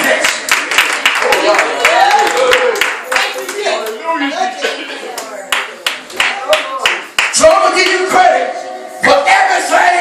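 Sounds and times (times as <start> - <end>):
sharp hand claps: 5.5 - 8.0.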